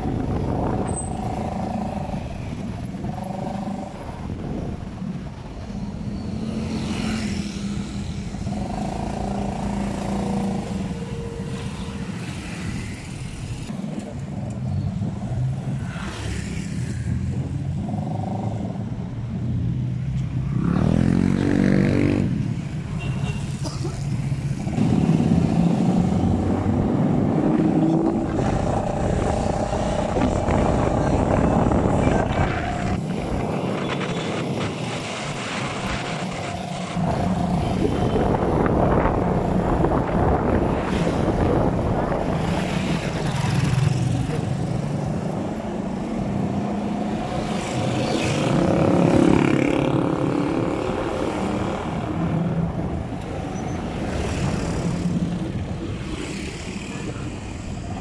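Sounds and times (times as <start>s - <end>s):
road and wind noise: 0.0s - 58.0s
vehicles passing: 0.0s - 58.0s.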